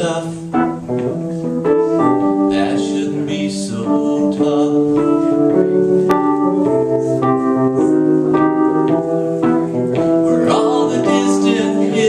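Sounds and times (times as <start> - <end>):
electric keyboard piano chords: 0.0 - 12.0.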